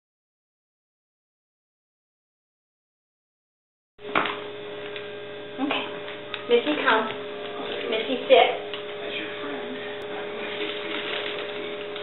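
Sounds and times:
electrical hum: 4.0 - 12.0.

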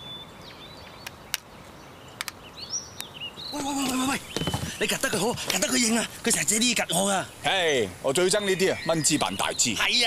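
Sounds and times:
birds chirping: 0.0 - 10.0
outdoor background noise: 0.0 - 10.0.

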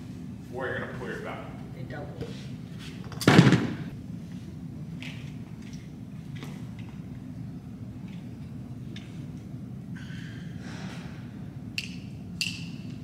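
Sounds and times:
low background hum: 0.0 - 13.0.

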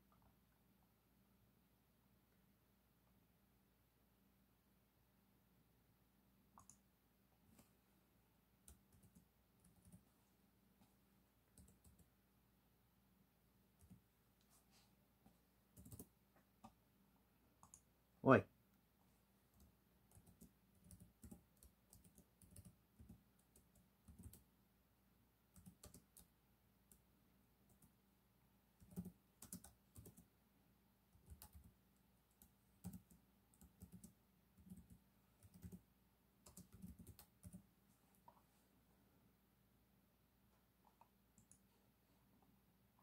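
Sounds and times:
mouse clicks: 6.6 - 6.8, 17.6 - 17.9
typing on computer keyboard: 8.6 - 10.0, 11.6 - 12.1, 15.8 - 16.1, 19.6 - 24.5, 25.6 - 26.3, 28.8 - 30.3, 31.2 - 35.8, 36.4 - 37.6.

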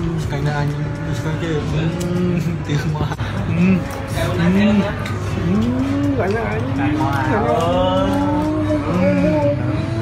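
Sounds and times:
person making low vocal sounds: 0.0 - 4.5, 5.3 - 10.0.

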